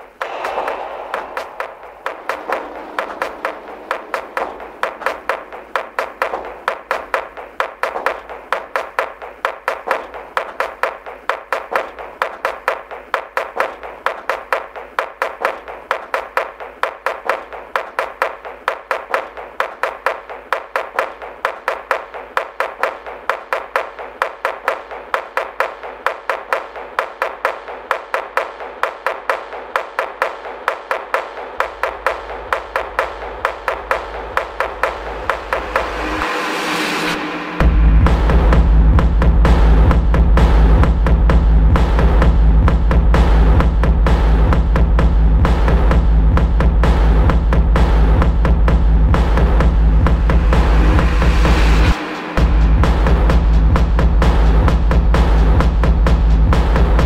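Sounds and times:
clap-like techno hits: 0.0 - 57.0
low bass: 34.6 - 57.0.

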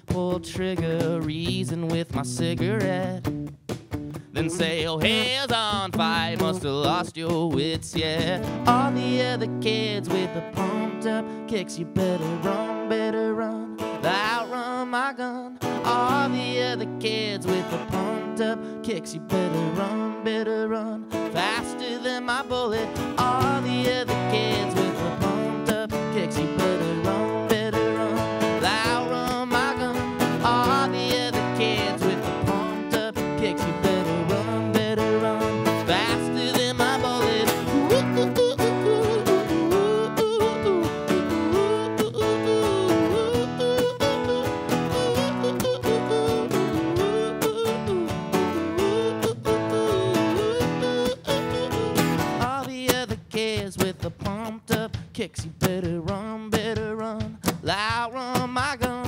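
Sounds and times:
drum kit: 0.0 - 8.9, 49.4 - 59.0
electric guitar: 0.0 - 59.0
strummed acoustic guitar: 0.0 - 59.0.

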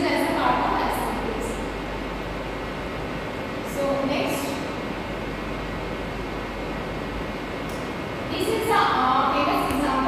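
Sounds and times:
woman speaking: 0.0 - 1.7, 3.7 - 4.7, 8.3 - 10.0
room noise hiss and hum: 0.0 - 10.0.

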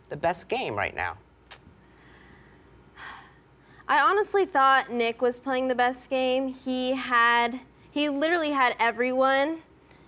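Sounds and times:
woman speaking: 3.9 - 9.7.

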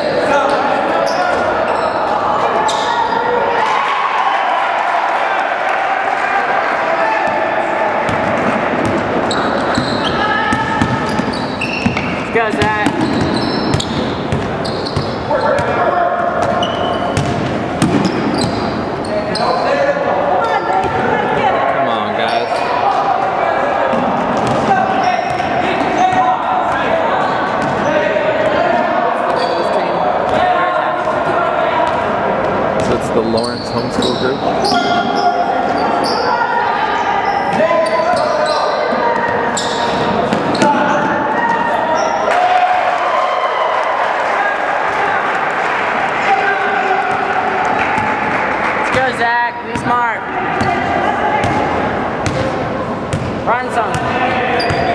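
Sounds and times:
voices of players and spectators: 0.0 - 54.9.

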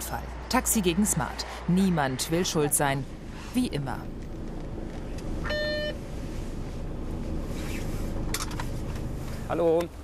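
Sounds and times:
car interior rumble: 2.4 - 10.0.

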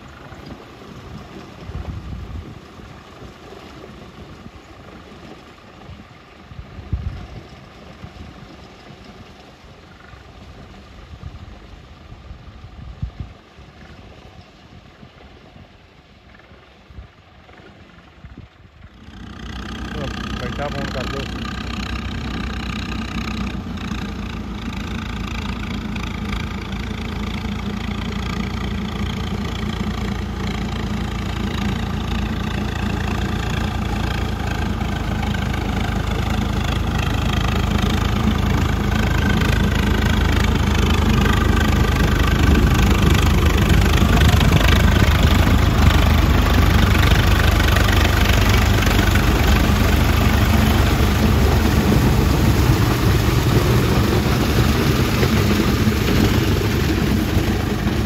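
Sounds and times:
tractor diesel engine running: 0.0 - 14.4, 15.0 - 58.0.

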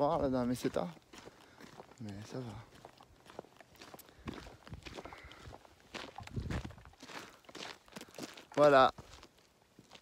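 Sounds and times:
footsteps on dirt track: 0.0 - 10.0.

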